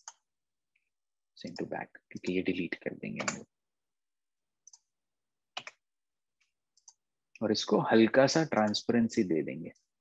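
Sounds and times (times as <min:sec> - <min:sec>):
computer mouse clicks: 0:04.6 - 0:04.9, 0:05.5 - 0:07.1.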